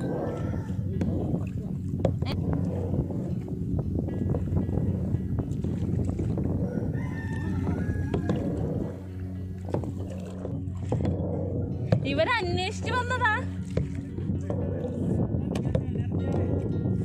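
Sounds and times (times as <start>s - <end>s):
kayak paddle splashing in water: 4.2s - 16.6s.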